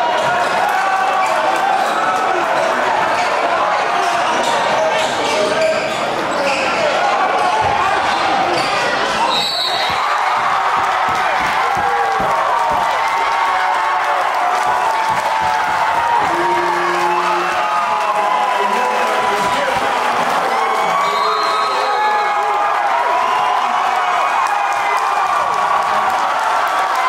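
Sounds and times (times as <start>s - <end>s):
crowd shouting and cheering: 0.0s - 27.0s.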